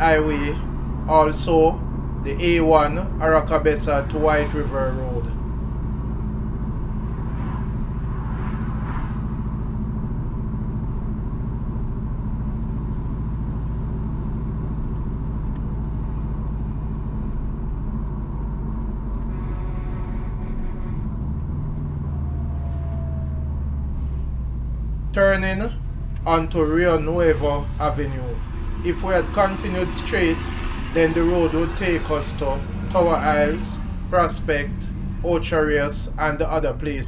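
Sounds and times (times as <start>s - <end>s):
car engine and tyres rumbling: 0.0s - 37.0s.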